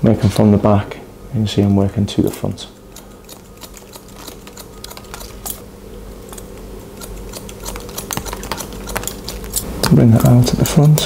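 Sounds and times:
scissors snipping hair: 2.2 - 5.6, 6.2 - 11.0.

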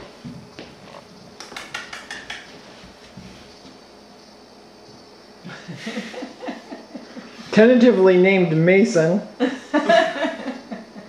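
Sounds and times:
puppy claws clicking on wood floor: 1.4 - 2.6.

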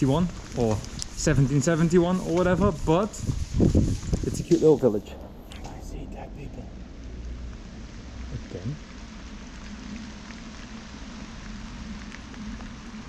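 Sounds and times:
low rumble: 0.0 - 13.0
steady rain falling: 0.0 - 13.0.

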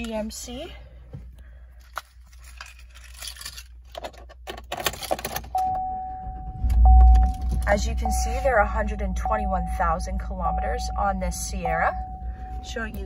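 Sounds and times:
keys jangling in ignition: 2.3 - 7.9
truck engine cranking and starting: 4.6 - 9.8
steady high tone: 5.6 - 13.0.

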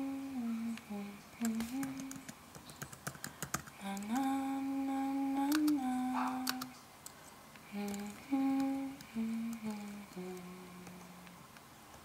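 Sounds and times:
person humming a melody: 0.0 - 2.3, 3.8 - 6.8, 7.7 - 11.4.

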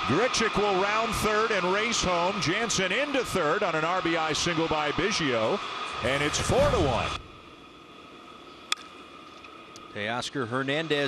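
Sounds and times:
faint ballpark background: 0.0 - 11.0.

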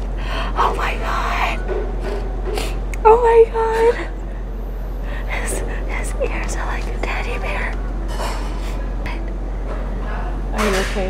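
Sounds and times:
low hum: 0.0 - 11.0
whispered voices murmuring: 5.0 - 11.0.

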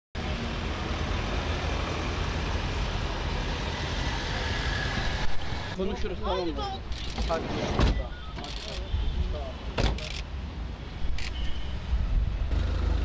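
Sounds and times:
road traffic rumble and hiss: 0.2 - 13.0.

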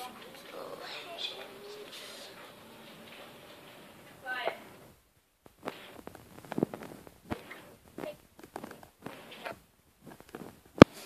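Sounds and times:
handling taps and rustles: 5.4 - 11.0.

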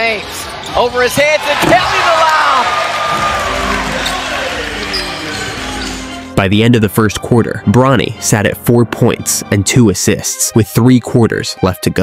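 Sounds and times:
arena crowd noise: 0.0 - 6.2.

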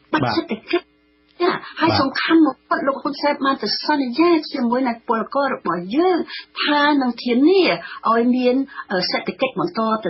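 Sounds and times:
faint steady hum: 0.0 - 10.0
person speaking: 0.1 - 0.6, 1.4 - 2.2.

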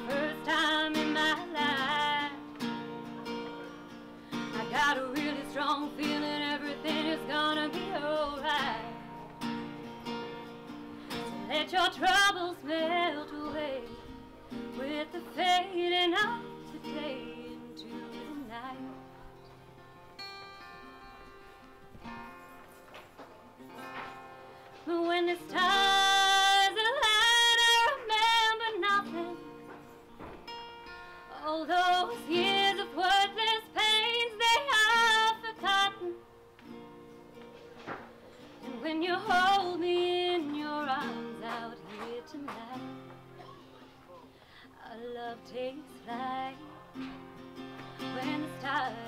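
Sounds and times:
woman singing: 0.0 - 3.0, 4.3 - 9.3, 11.3 - 19.3, 24.8 - 29.7, 31.3 - 36.3, 38.6 - 43.4, 44.6 - 47.3, 47.9 - 49.0
strummed acoustic guitar: 0.0 - 49.0.

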